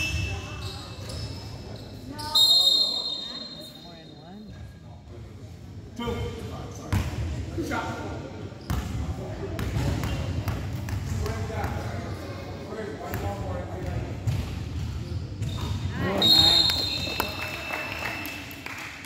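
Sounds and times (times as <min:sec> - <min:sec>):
spectators chattering and calling: 0:00.0 - 0:04.5
shrill whistle blast: 0:02.3 - 0:03.8, 0:16.2 - 0:18.2.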